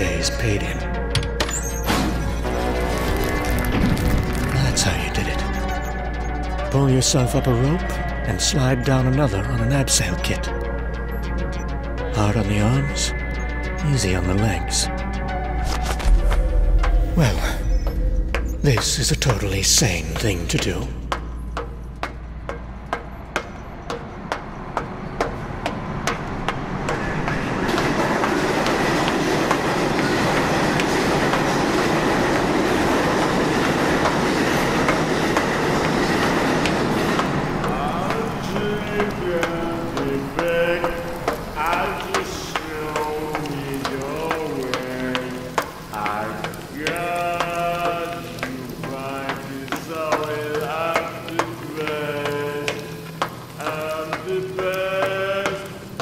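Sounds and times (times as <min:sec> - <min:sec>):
subway train rumbling: 0:12.2 - 0:56.0.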